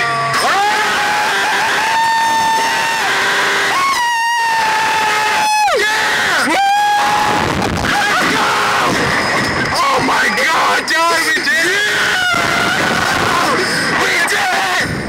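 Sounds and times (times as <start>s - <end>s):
men screaming: 0.3s - 15.0s
men yelling: 0.4s - 14.9s.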